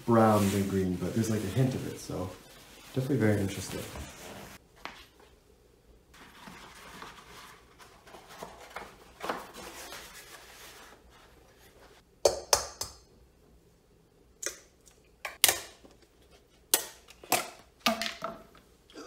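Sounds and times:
handling rustle: 0:00.0 - 0:04.6.

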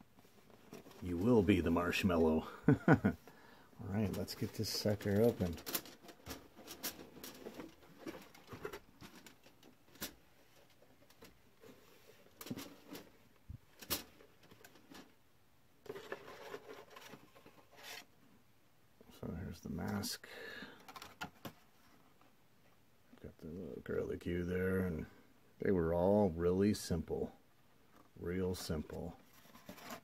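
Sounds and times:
cellophane and plastic crinkling: 0:03.9 - 0:15.1.

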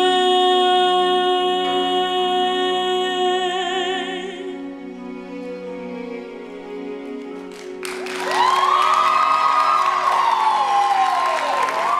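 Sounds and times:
audience cheering and whooping: 0:07.8 - 0:11.9.

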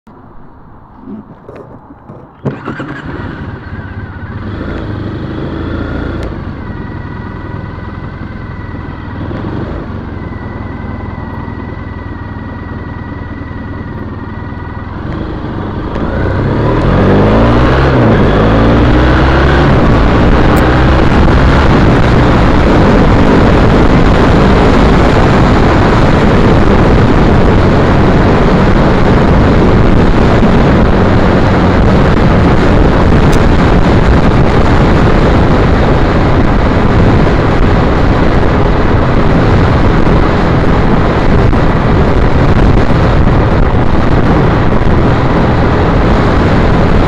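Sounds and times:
wind rush on microphone: 0:00.1 - 0:47.0
motorcycle engine accelerating: 0:01.0 - 0:47.0.

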